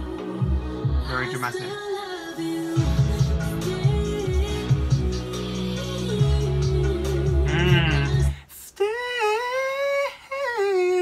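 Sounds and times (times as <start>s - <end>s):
woman singing long notes: 7.1s - 11.0s.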